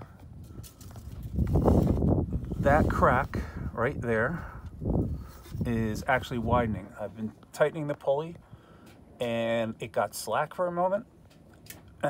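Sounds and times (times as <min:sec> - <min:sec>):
microphone handling rumble: 0:00.1 - 0:07.3.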